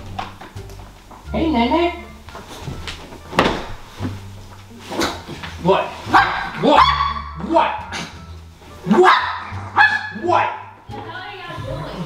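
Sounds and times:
heavy thump on a mattress: 0:02.7 - 0:04.2.

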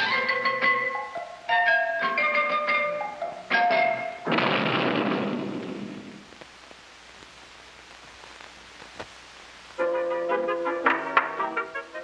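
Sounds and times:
faint hiss: 0:00.0 - 0:12.0
crash-like burst of noise: 0:04.2 - 0:06.4.

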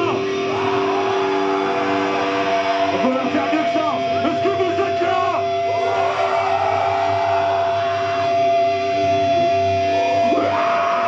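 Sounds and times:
distorted electric guitars: 0:00.0 - 0:11.0
metal band playing loudly: 0:00.0 - 0:11.0.

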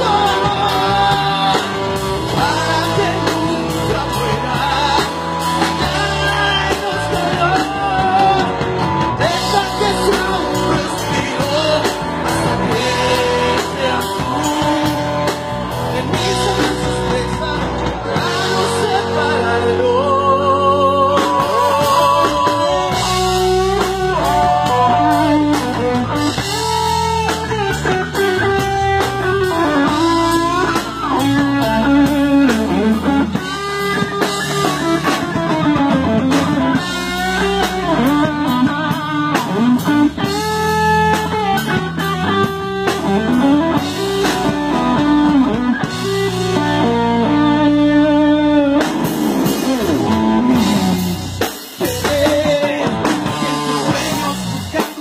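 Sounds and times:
bass: 0:00.0 - 0:55.0
drums: 0:00.0 - 0:55.0
electric guitar solo: 0:00.0 - 0:55.0.

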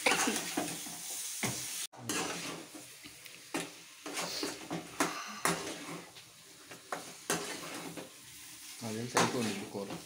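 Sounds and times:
food sizzling in a pan: 0:00.0 - 0:10.0
metal spoon scraping a pan: 0:02.0 - 0:02.8, 0:03.5 - 0:10.0.

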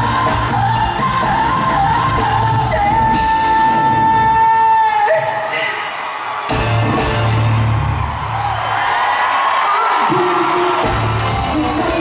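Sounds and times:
heavy bass and drum beat: 0:00.0 - 0:04.3, 0:10.1 - 0:12.0.

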